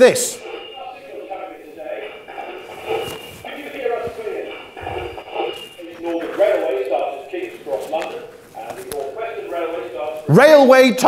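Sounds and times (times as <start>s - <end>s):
muffled speech in a hall: 0.0s - 11.0s
shuffling handling noises: 0.4s - 10.3s.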